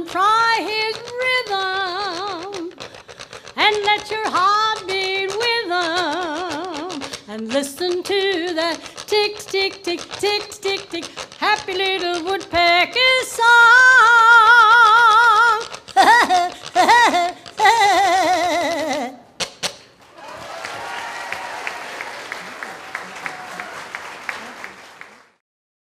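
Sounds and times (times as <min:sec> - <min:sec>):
elderly woman singing with vibrato: 0:00.0 - 0:19.2
audience applause: 0:20.0 - 0:25.4.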